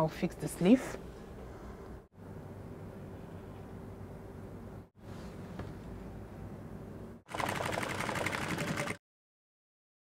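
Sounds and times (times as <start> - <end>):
sewing machine clatter: 7.3 - 9.0.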